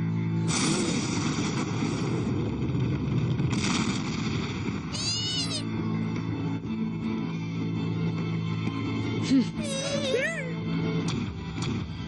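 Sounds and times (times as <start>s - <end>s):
cartoon character yelp: 4.9s - 5.7s.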